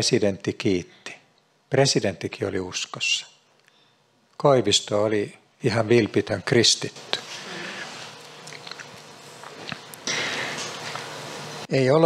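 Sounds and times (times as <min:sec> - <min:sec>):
mouth clicks: 0:08.4 - 0:10.2
man breathing in through nose: 0:10.0 - 0:10.7.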